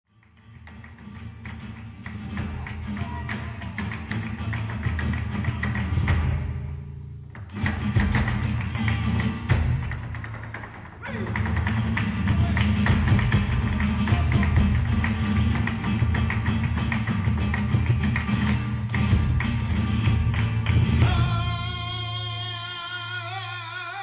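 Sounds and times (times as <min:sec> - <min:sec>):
flamenco group playing: 0:00.1 - 0:24.0.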